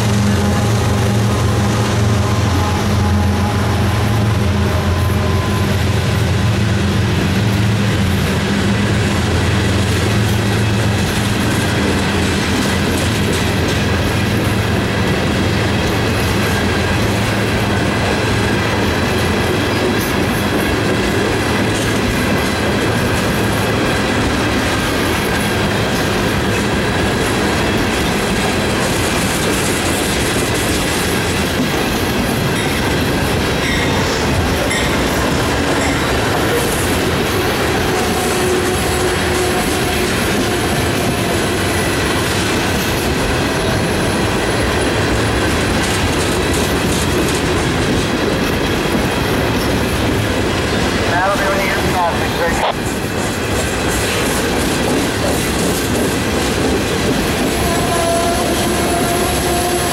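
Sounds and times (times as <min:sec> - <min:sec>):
steel wheels rumbling on rail: 0:00.0 - 0:59.9.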